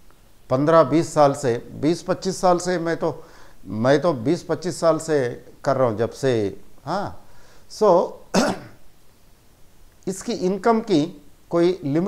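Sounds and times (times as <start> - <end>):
man speaking: 0.5 - 8.7, 10.0 - 12.0
man clearing throat: 8.3 - 8.8.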